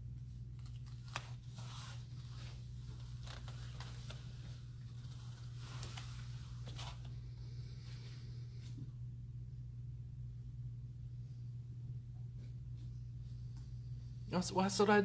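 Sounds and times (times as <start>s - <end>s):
steady low hum: 0.0s - 15.0s
cloth and bedsheets rustling: 1.0s - 7.2s.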